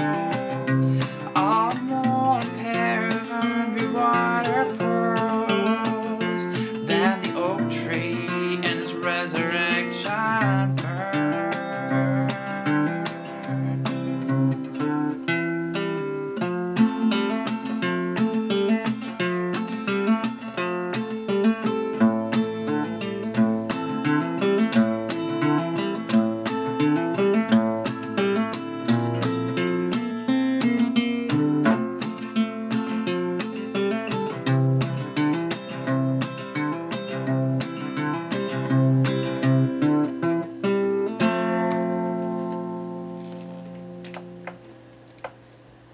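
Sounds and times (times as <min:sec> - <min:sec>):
acoustic guitar chords: 0:00.0 - 0:45.9.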